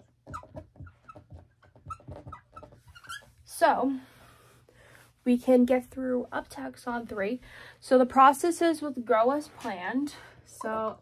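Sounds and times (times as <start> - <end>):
marker squeaking on whiteboard: 0.0 - 3.6.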